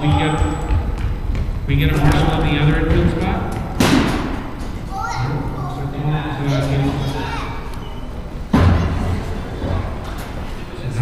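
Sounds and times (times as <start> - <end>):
loud sharp thump: 3.8 - 4.5.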